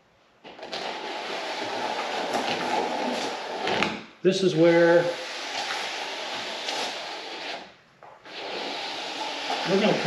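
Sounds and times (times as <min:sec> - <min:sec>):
plastic spreader scraping wet resin: 0:00.4 - 0:10.0.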